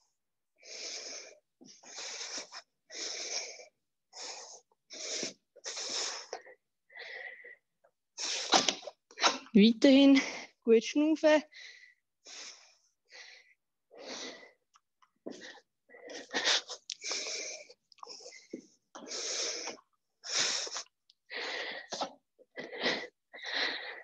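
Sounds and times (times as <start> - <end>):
woman breathing hard: 11.5 - 14.6, 15.2 - 24.0.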